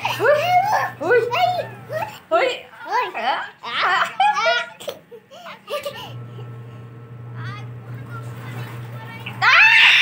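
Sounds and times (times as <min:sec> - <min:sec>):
woman laughing: 0:00.0 - 0:01.0.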